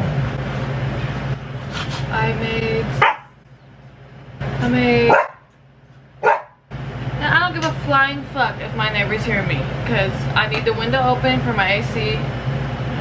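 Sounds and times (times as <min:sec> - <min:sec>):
dogs barking and yipping: 0:03.0 - 0:03.4, 0:05.1 - 0:05.5, 0:06.2 - 0:06.6.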